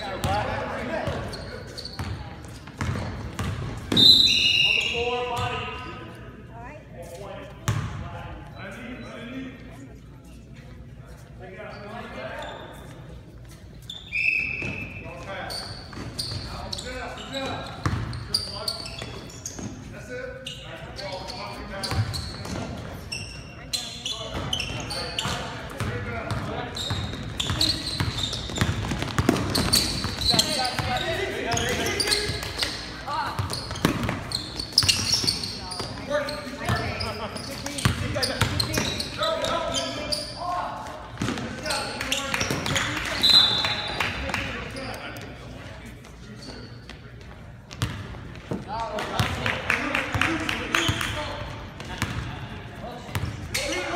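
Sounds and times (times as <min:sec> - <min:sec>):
sneaker squeaks: 0:00.0 - 0:09.6, 0:10.2 - 0:49.4, 0:50.5 - 0:53.9.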